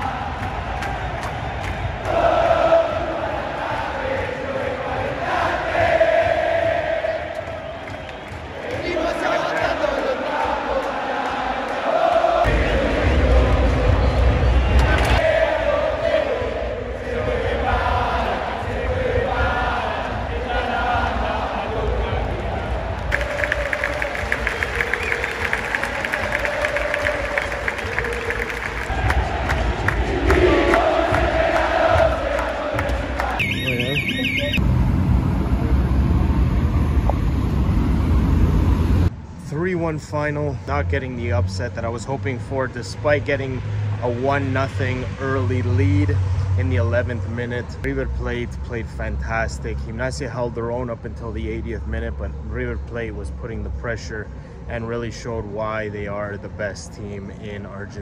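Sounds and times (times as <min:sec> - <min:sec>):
football crowd chanting: 0:00.0 - 0:34.6
city traffic rumble: 0:16.7 - 0:58.0.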